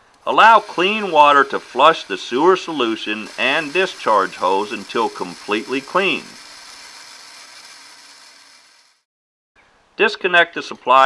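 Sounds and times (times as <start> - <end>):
water rushing through a pump hose: 0.2 - 9.1.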